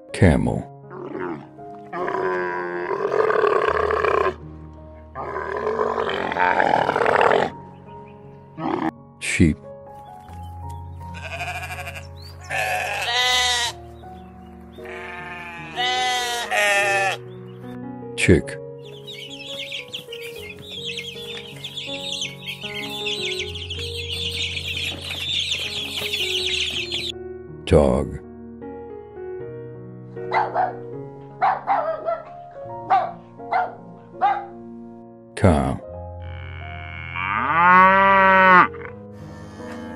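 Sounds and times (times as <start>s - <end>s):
background music: 0.0s - 39.9s
sheep bleating: 11.1s - 13.8s, 14.8s - 17.2s
dog barking: 30.3s - 34.6s.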